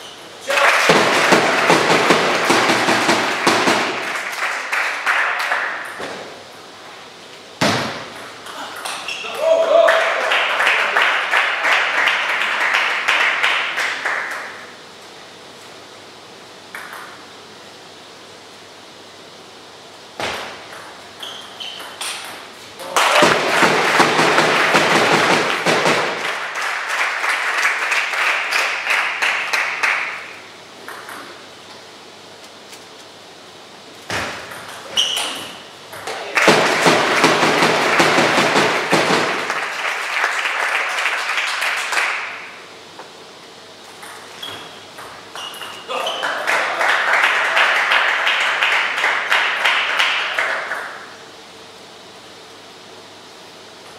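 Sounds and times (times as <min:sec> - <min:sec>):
spectators applauding and cheering: 0:00.4 - 0:06.0, 0:09.2 - 0:14.6, 0:22.8 - 0:30.3, 0:36.3 - 0:42.6, 0:45.9 - 0:51.0.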